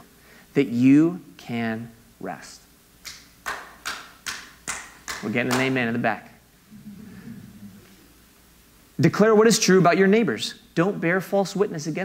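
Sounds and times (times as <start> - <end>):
hand claps with echo: 3.0 - 5.8.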